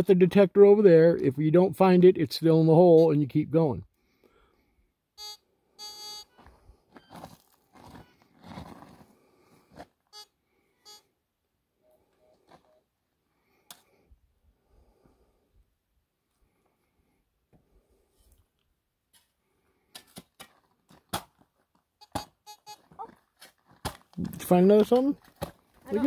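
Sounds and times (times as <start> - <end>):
metal detector beeps: 5.2 - 7.3, 10.1 - 11.1, 22.0 - 22.8.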